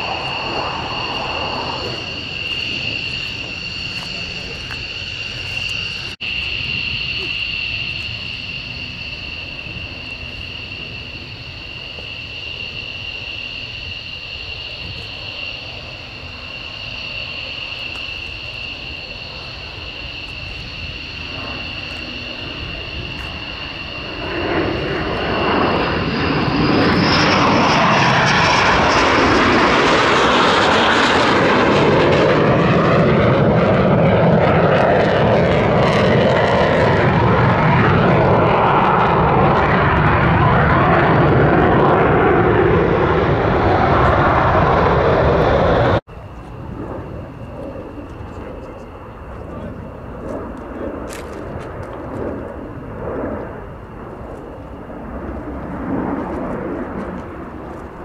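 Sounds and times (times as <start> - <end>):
jet engine roar: 0.0 - 58.0.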